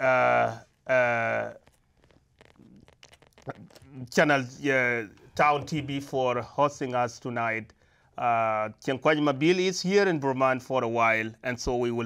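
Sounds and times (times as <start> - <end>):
man speaking: 0.0 - 1.7, 3.5 - 12.0
breath noise: 7.7 - 8.2.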